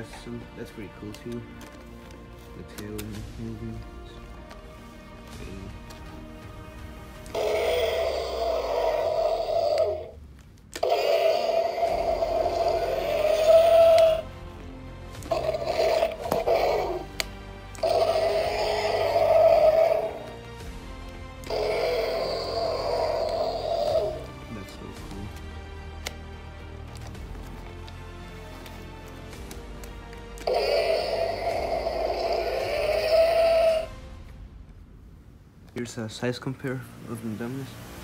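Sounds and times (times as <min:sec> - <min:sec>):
electronic toy roar: 0:07.3 - 0:14.3, 0:15.1 - 0:20.5, 0:21.4 - 0:24.4, 0:30.4 - 0:34.0.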